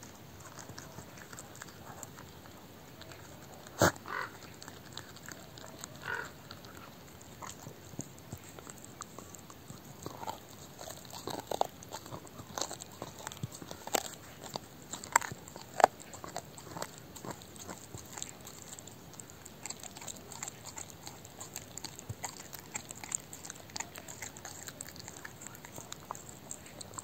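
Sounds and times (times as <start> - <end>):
dog gnawing bone: 0.0 - 27.0
bone cracking: 0.3 - 27.0.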